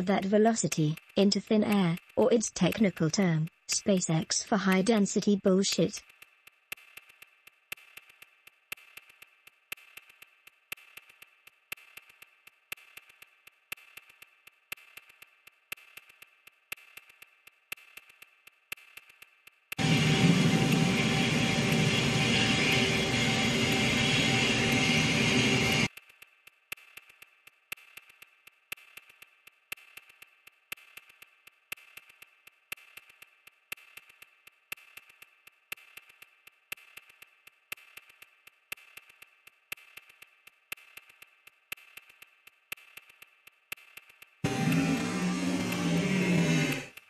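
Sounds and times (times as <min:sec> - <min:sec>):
ticking beat music: 0:00.0 - 0:25.1.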